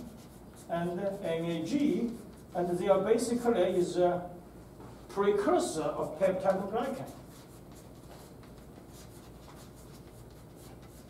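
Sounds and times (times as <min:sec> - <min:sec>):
chalk scratching on blackboard: 0:00.0 - 0:02.7, 0:05.9 - 0:11.0.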